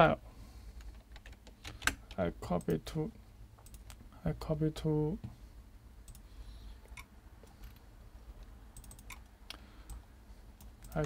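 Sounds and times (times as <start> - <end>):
low steady hum: 0.0 - 11.0
computer mouse clicks: 3.6 - 4.0, 6.1 - 7.8, 8.4 - 10.0.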